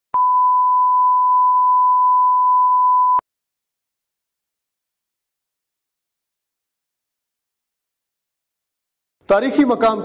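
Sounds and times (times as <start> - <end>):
sine line-up tone: 0.2 - 3.2.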